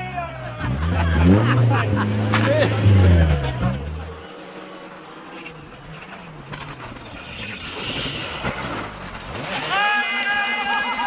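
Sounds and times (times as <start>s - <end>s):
spectators' voices: 0.0s - 11.0s
rally car engine at high revs: 0.4s - 11.0s.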